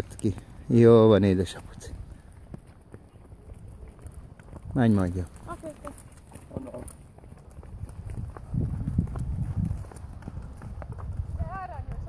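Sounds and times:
horse hoofbeats on dirt track: 0:00.0 - 0:12.0.

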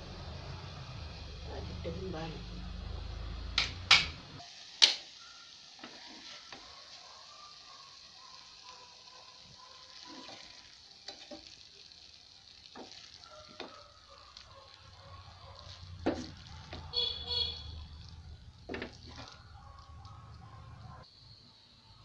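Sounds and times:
faint sizzling: 0:04.4 - 0:21.3.

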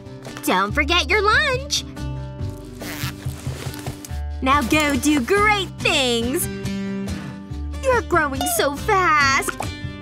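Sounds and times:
background music: 0:00.0 - 0:10.0
backpack zipper being pulled: 0:02.7 - 0:03.9.

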